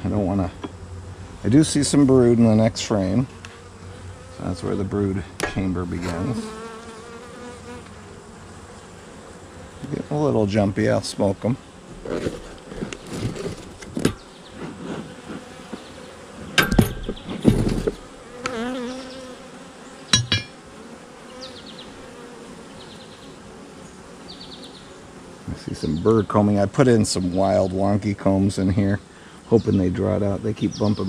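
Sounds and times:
bees buzzing: 0.0 - 31.0
knocks and thumps of handling: 11.9 - 15.1, 16.5 - 18.0, 20.1 - 20.6.

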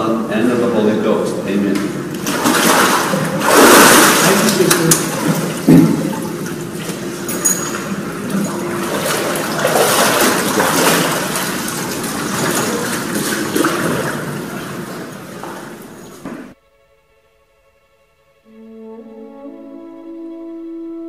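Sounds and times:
water sloshing and splashing: 1.8 - 16.6.

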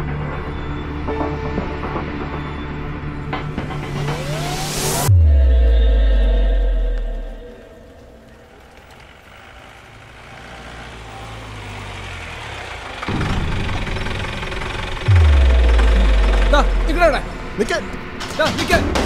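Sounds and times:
low drone: 2.9 - 8.8, 13.1 - 18.2
deep falling sub-bass boom: 4.2 - 7.8, 15.0 - 17.6
rough rumbling noise: 13.6 - 18.2.

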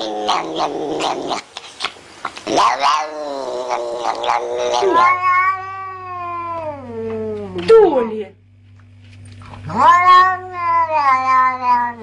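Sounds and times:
steady low hum: 0.0 - 12.0
cat meowing: 3.0 - 7.1, 9.6 - 12.0.

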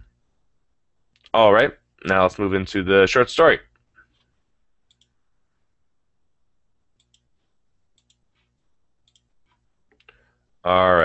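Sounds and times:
computer mouse clicks: 4.0 - 5.2, 7.0 - 10.2.

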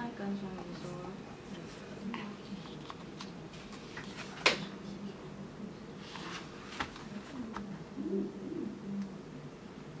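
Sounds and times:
bird cooing: 7.9 - 9.0.

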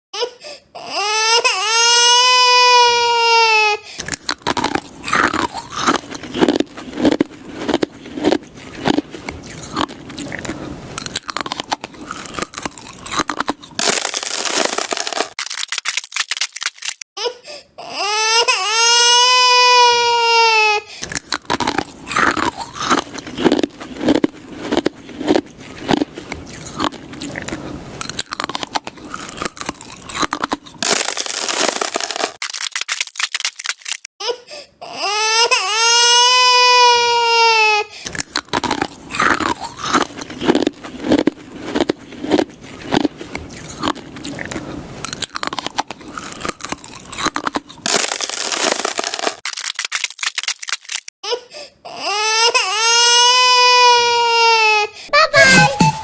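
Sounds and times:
ice cubes being crunched: 4.0 - 17.0, 21.0 - 34.1, 38.1 - 51.1.

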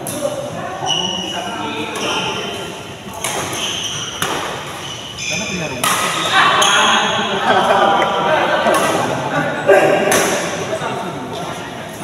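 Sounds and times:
players' voices: 0.0 - 12.0
rackets hitting shuttlecock: 3.1 - 5.1, 5.8 - 6.8, 8.6 - 9.2, 10.0 - 10.6.

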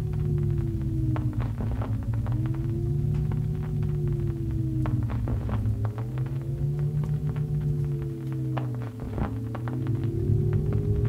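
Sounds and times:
low droning hum: 0.0 - 11.0
rising and falling tones: 0.0 - 11.0.

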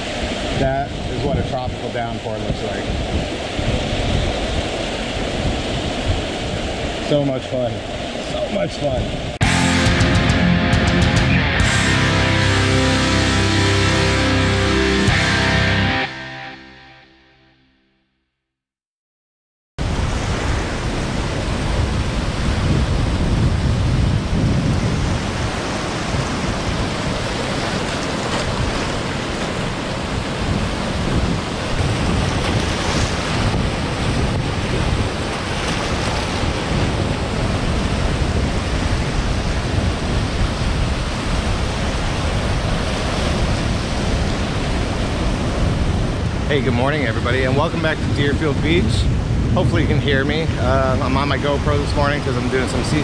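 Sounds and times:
ocean waves breaking on rocks: 0.0 - 9.4, 19.8 - 53.0
wind rumble on microphone: 0.0 - 9.4, 19.8 - 53.0.

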